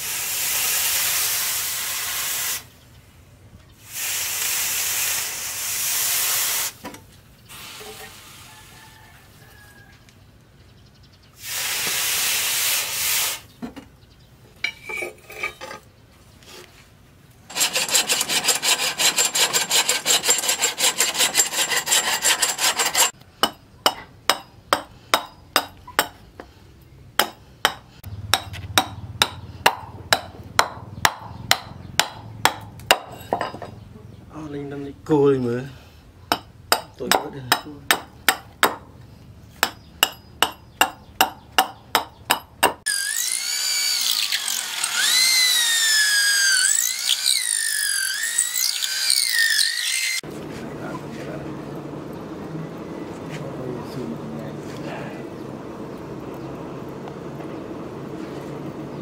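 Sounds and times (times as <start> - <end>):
hacksaw cutting wood: 17.5 - 23.2, 42.7 - 50.2.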